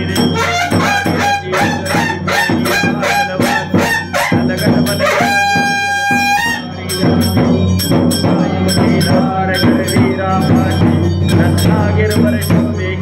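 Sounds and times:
devotional music with percussion: 0:00.0 - 0:13.0
brass horn blast: 0:00.3 - 0:06.7.

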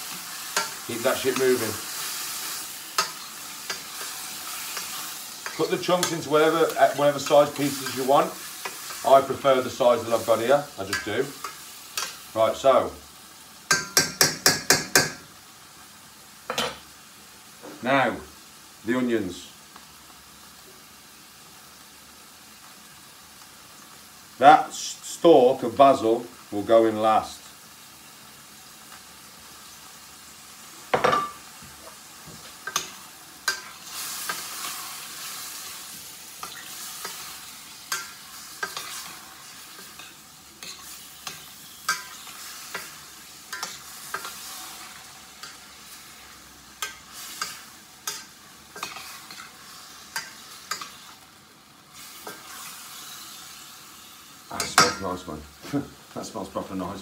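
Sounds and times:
food sizzling in a frying pan: 0:00.0 - 0:57.0.

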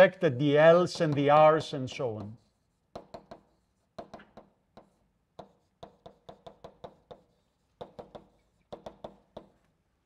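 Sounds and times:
chalk tapping on a blackboard: 0:00.8 - 0:09.8.

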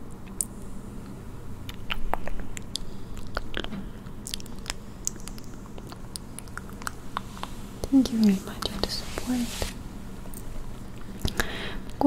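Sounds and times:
wet mouth clicks and lip smacks: 0:01.7 - 0:08.0.

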